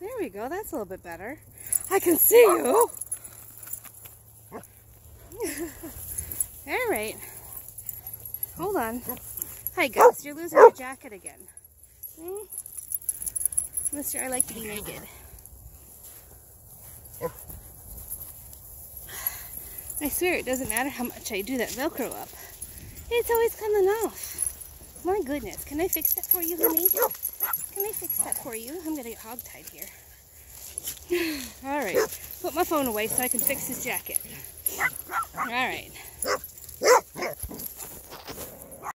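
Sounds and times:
dog barking: 10.0s - 10.8s, 36.2s - 37.4s.

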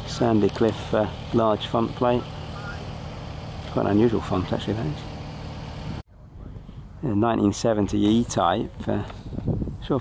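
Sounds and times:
outdoor background hum: 0.0s - 10.0s.

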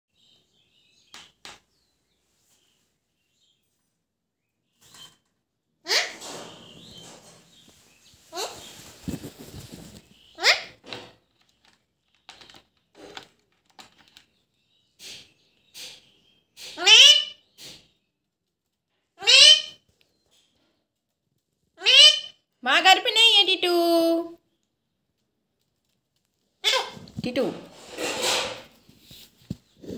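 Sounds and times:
parakeet calling: 16.8s - 17.5s, 19.2s - 19.8s, 21.8s - 22.4s.

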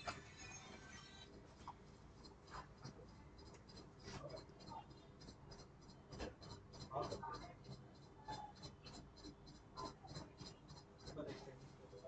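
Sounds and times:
writing sounds: 0.0s - 12.0s
soft regular ticking: 1.2s - 12.0s
low indistinct voices: 6.1s - 12.0s.

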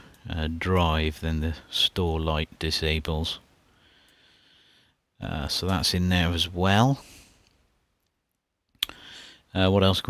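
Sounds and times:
person speaking: 0.2s - 3.5s, 5.2s - 7.2s
short breath: 3.7s - 5.0s, 8.9s - 9.5s.

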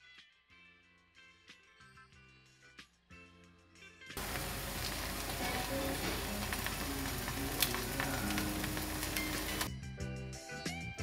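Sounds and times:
eggs sizzling in a pan: 4.2s - 9.7s.

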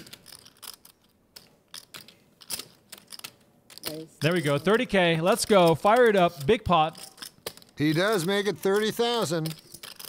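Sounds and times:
clay poker chips clicking: 0.0s - 10.0s.

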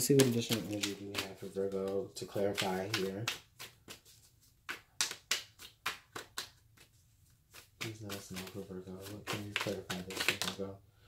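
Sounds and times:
cards being shuffled: 0.0s - 10.7s.

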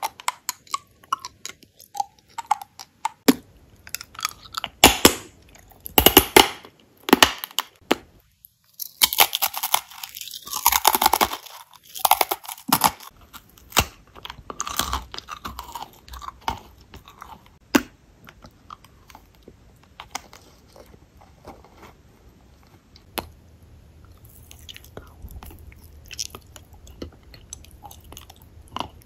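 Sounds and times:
chewing crisp crackers: 8.7s - 17.6s, 24.0s - 29.0s.

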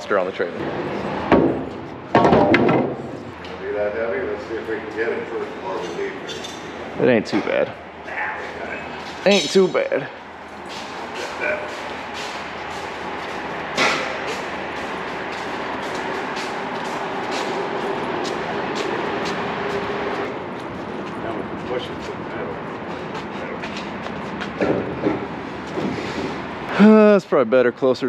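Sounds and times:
footsteps: 10.5s - 26.6s.

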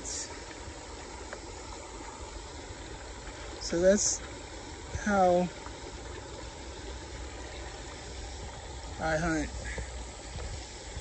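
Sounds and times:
creek running over gravel: 0.0s - 11.0s.

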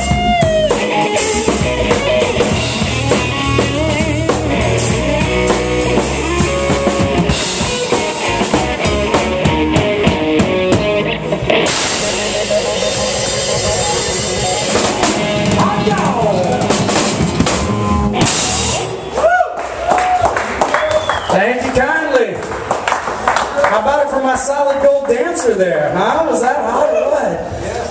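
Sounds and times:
drum kit: 0.0s - 19.4s
electric bass: 0.0s - 19.4s
electric guitar: 0.0s - 20.2s
man talking: 15.4s - 16.8s, 21.3s - 22.4s, 23.6s - 27.9s.

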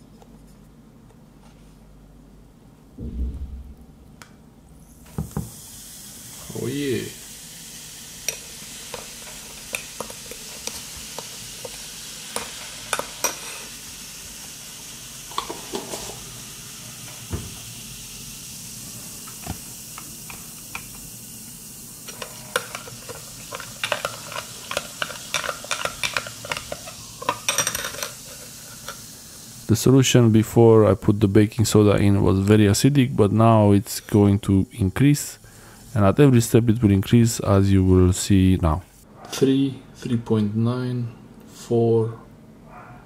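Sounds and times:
fizzing bubbles hissing: 4.8s - 37.7s.

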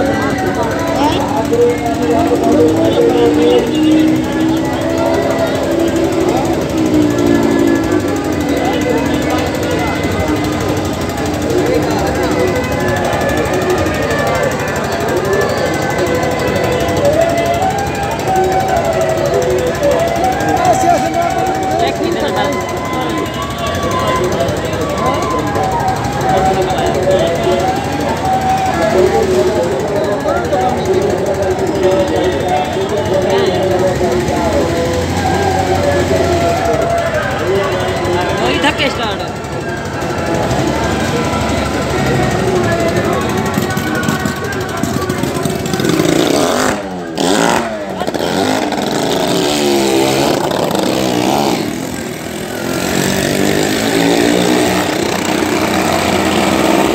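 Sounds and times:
vehicle engines puttering: 0.0s - 56.9s
voices: 0.0s - 56.9s.

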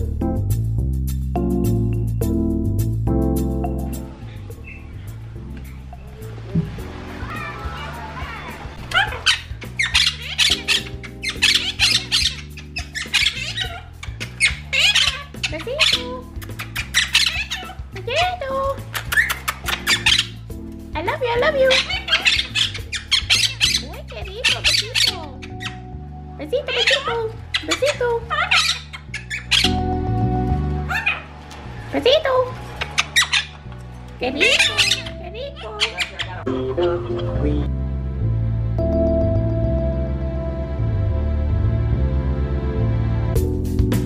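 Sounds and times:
music with repeating bass line: 0.0s - 7.0s, 36.4s - 44.0s
background music: 0.0s - 44.0s
parakeets squawking: 3.9s - 30.2s, 30.8s - 37.7s.

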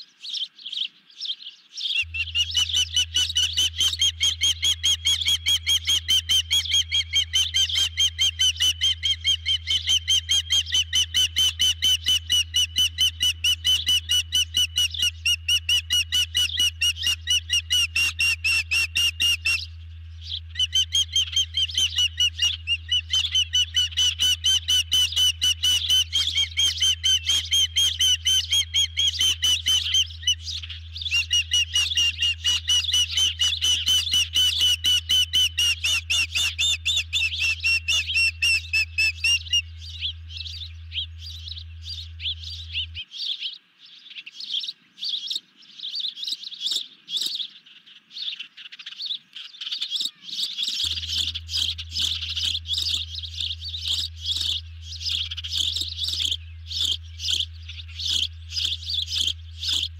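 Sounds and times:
osprey chirped whistles: 1.8s - 47.5s, 49.6s - 59.9s
low hum: 2.0s - 43.9s, 50.6s - 59.9s.

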